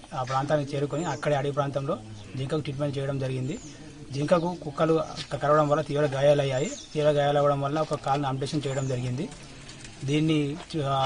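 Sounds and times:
man speaking: 0.0 - 9.4, 10.0 - 11.0.

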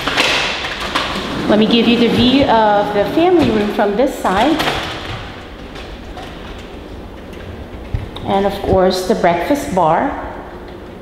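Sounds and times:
indoor room rumble and hiss: 0.0 - 11.0.

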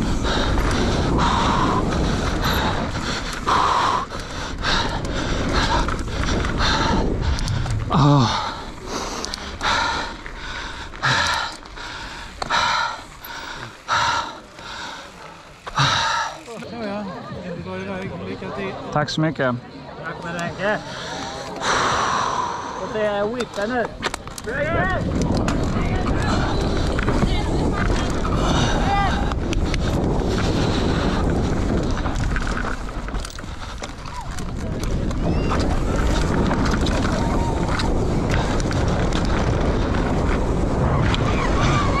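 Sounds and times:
wind rushing over microphone: 0.0 - 15.0, 21.6 - 42.0
person breathing out forcefully: 0.0 - 16.4, 20.8 - 23.0
bike clicks and rattles: 0.0 - 17.0, 20.0 - 22.1, 22.9 - 42.0
bike tyre rumble on dirt: 0.0 - 18.8, 20.5 - 42.0.

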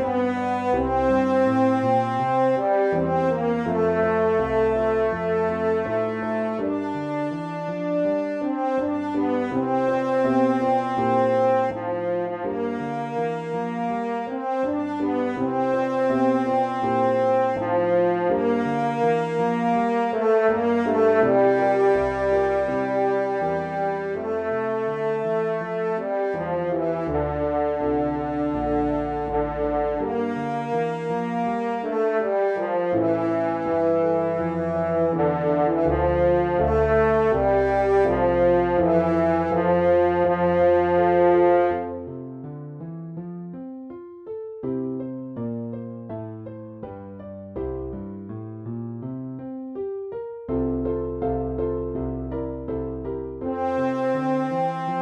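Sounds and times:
brass-toned melody line: 0.0 - 42.4, 50.4 - 55.0
chordal accompaniment with bass line: 0.0 - 42.6, 50.2 - 55.0.

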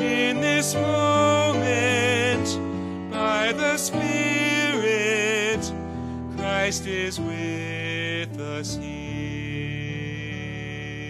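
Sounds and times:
man singing worship song: 0.0 - 11.0.

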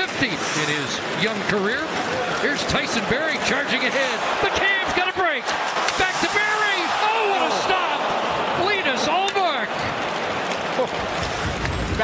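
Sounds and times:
hockey crowd reacting loudly: 0.0 - 11.8.

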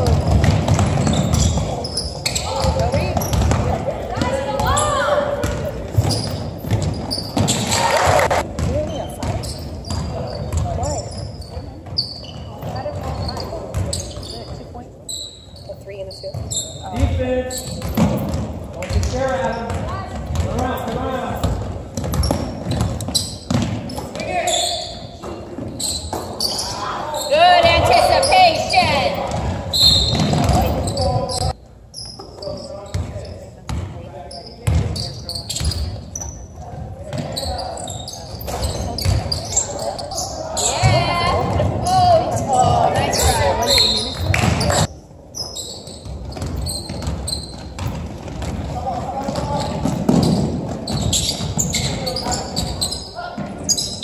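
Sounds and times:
basketball bouncing on wooden floor: 0.0 - 7.6, 8.4 - 11.0, 11.8 - 14.6, 17.7 - 20.6, 21.4 - 24.4, 29.1 - 31.5, 34.6 - 35.0, 38.5 - 39.4, 46.0 - 52.8
indistinct shouts and voices: 7.6 - 8.4, 39.4 - 44.9.

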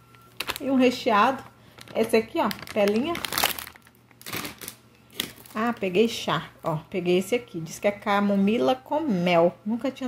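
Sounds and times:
plastic packaging crinkling: 0.0 - 5.8.

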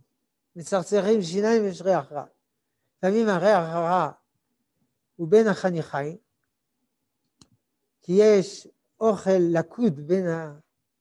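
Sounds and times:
man speaking: 0.6 - 2.4, 3.0 - 4.3, 5.2 - 6.2, 8.0 - 10.7.

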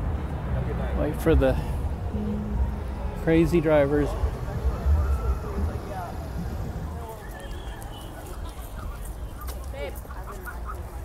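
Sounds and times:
low rumble of passing traffic: 0.0 - 11.0
faint distant voices: 0.4 - 11.0.

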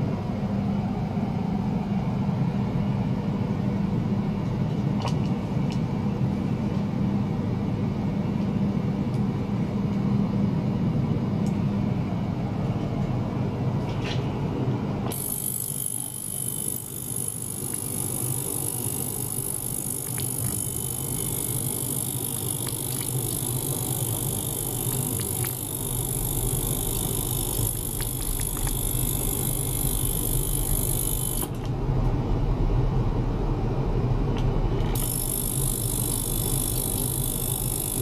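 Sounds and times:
ultrasonic cleaner low buzz: 0.0 - 38.0.

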